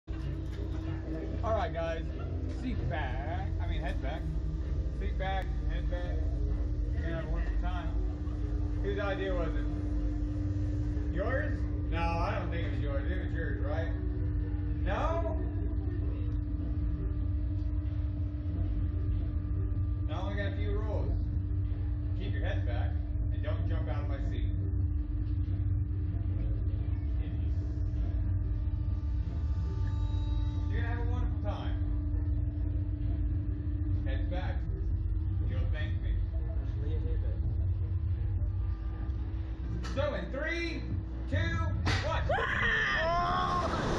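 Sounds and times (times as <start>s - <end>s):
low hum and rumble: 0.0s - 43.9s.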